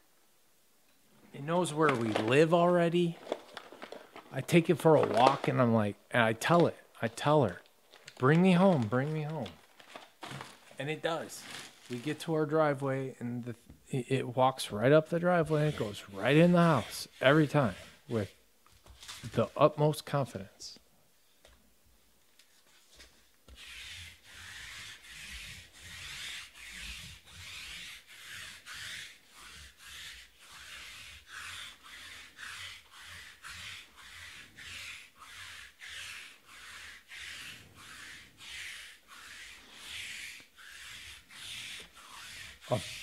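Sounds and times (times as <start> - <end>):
lint roller rasping over mat: 14.9 - 18.4, 22.8 - 43.0.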